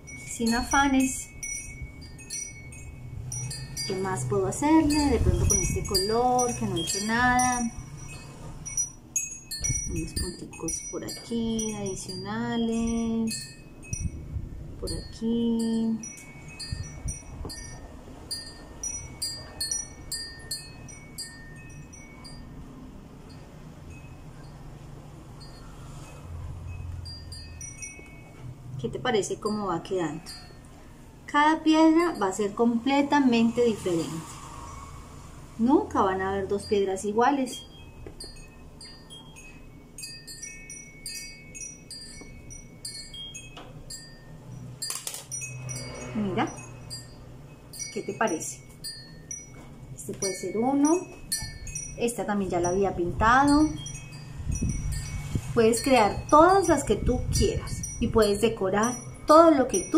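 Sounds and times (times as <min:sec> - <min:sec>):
chimes tinkling: 0:00.0 - 0:35.1, 0:36.1 - 0:59.9.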